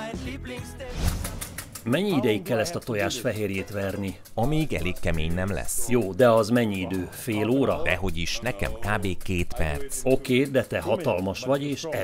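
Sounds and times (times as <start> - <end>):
background music: 0.0 - 12.0
person speaking: 1.8 - 12.0.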